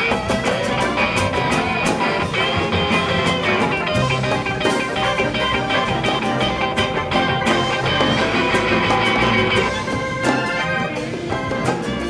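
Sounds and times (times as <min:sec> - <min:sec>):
acoustic guitar: 0:00.0 - 0:12.0
electric guitar: 0:00.0 - 0:12.0.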